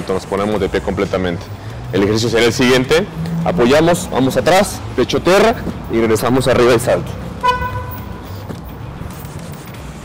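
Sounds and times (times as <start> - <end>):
vehicle horn honk: 7.4 - 8.2.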